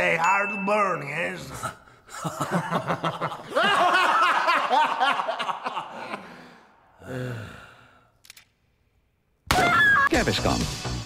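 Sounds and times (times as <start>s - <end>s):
loud laughter: 2.1s - 6.2s
man laughing: 2.1s - 6.3s
music: 10.0s - 11.0s.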